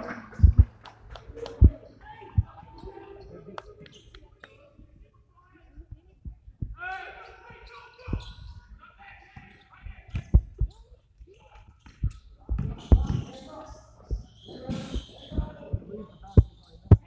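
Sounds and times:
basketball bouncing on wooden floor: 11.9 - 13.3.

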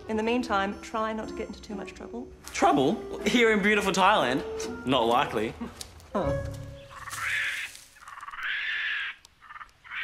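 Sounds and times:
short animal calls: 6.9 - 10.0.

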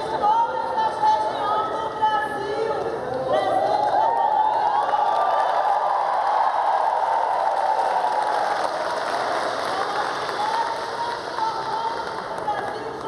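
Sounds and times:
audience applauding: 4.1 - 13.0.

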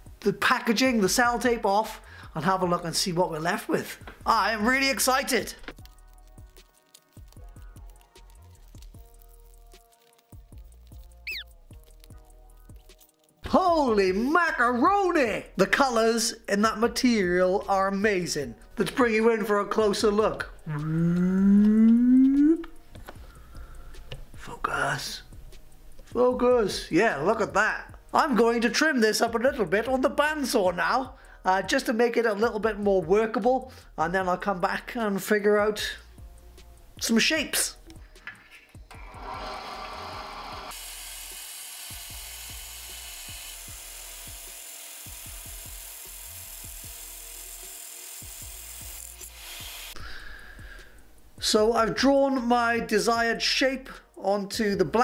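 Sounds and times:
man's rising vocal sound: 20.7 - 22.7
bandsaw cutting: 38.9 - 50.0.

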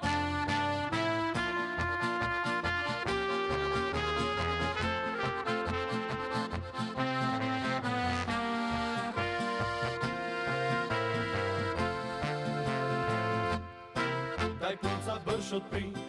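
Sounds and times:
clarinet melody: 0.0 - 15.6
trumpet melody: 0.0 - 15.6
accordion: 0.0 - 16.0
guitar: 0.0 - 16.0.

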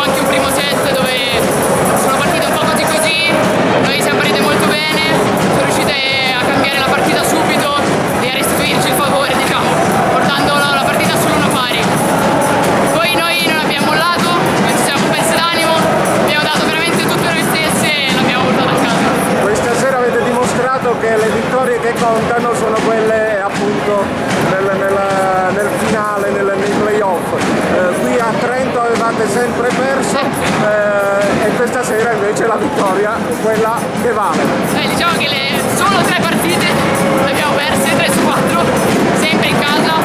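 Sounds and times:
loud background music: 0.0 - 40.0
woman talking: 2.0 - 11.9, 12.9 - 19.1, 34.7 - 40.0.

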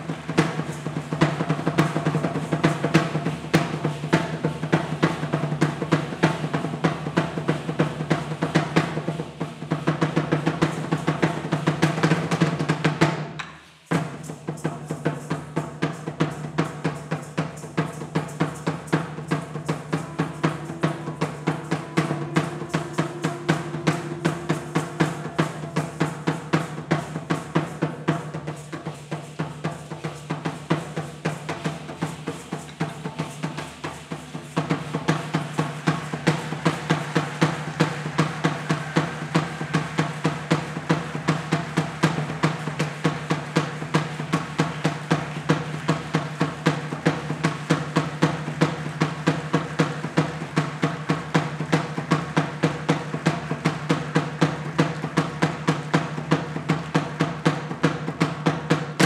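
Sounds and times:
drum beaten with sticks: 0.0 - 59.0.

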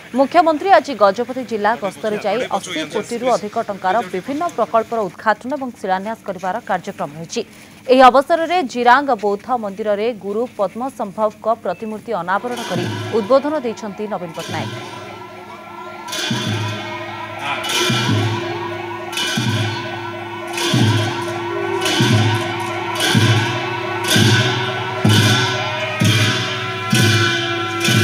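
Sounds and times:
held horn-like note: 12.3 - 28.0
cymbal clashes: 12.4 - 28.0
fast wavering high line: 12.4 - 28.0
large drum beats: 12.4 - 28.0.

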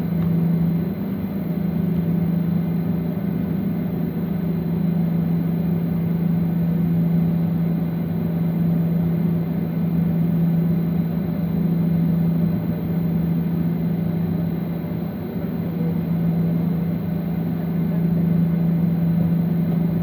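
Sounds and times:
airliner cabin drone: 0.0 - 20.0.

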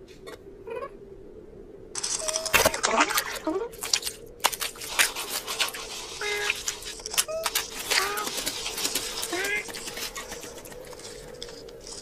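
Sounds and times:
cartoon scratching and clattering: 4.0 - 12.0.

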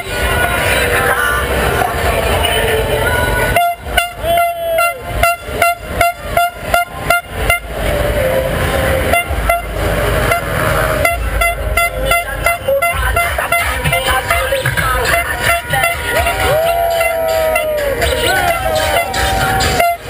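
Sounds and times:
car horns honking: 0.0 - 20.0
low traffic rumble: 0.0 - 20.0.

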